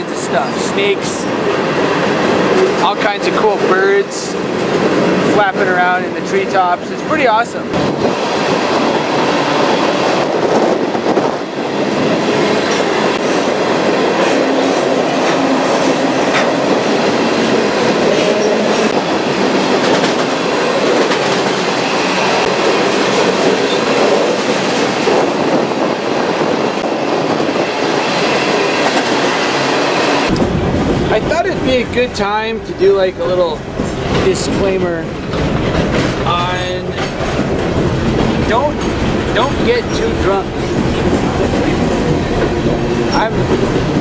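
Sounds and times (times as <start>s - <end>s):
train wheels rumbling on rails: 0.0s - 44.0s.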